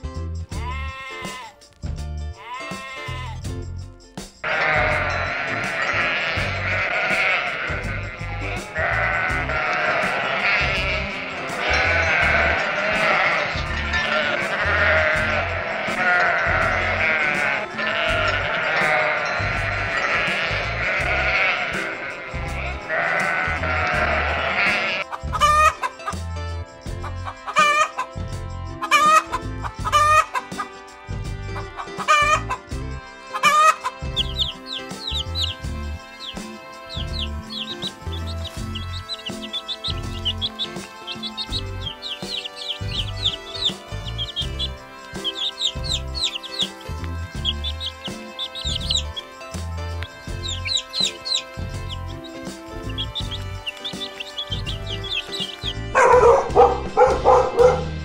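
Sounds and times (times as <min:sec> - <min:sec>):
sheep bleating: 0:00.6 - 0:01.6, 0:02.4 - 0:03.5, 0:04.4 - 0:25.8, 0:33.2 - 0:57.8
chickens clucking: 0:04.4 - 0:26.2, 0:26.9 - 0:28.1, 0:28.8 - 0:30.8, 0:31.6 - 0:58.0
rooster: 0:23.9 - 0:25.9, 0:27.0 - 0:28.1, 0:28.8 - 0:30.4, 0:31.8 - 0:32.5, 0:33.3 - 0:35.5.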